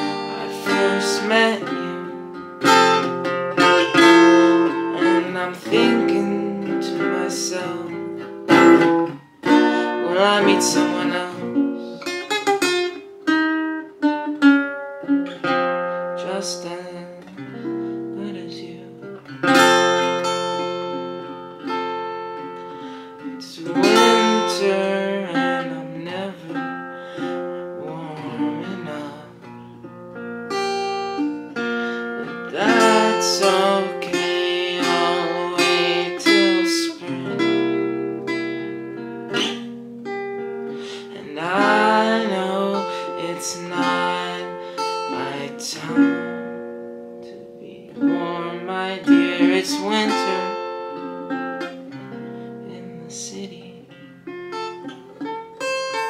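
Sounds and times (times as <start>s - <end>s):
man singing softly: 0.0s - 2.2s, 4.4s - 8.7s, 9.6s - 12.1s, 16.2s - 17.3s, 18.1s - 19.2s, 23.0s - 29.5s, 32.2s - 37.8s, 40.8s - 46.5s, 47.2s - 50.9s, 52.6s - 54.0s
acoustic guitar strumming chords: 0.0s - 56.0s.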